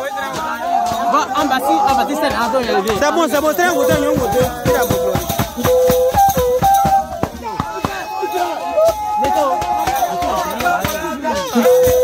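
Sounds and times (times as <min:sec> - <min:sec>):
voices singing and calling: 0:00.0 - 0:12.0
drum and rattle strikes: 0:00.1 - 0:12.0.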